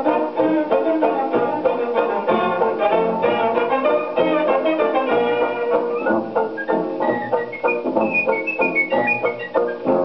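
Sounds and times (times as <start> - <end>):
dance-band music on a gramophone: 0.0 - 10.0.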